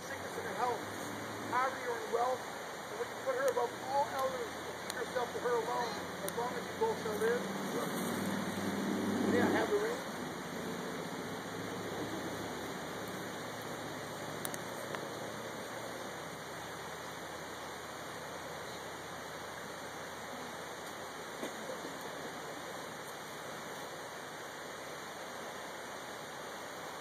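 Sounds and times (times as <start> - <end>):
outdoor background hiss: 0.0 - 27.0.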